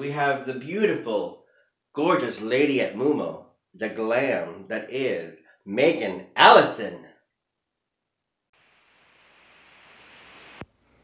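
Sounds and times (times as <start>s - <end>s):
room noise hiss: 8.6s - 11.0s.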